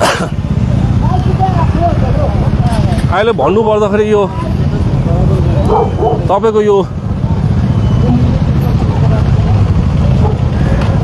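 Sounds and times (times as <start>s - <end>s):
many motorcycle engines running: 0.0s - 11.0s.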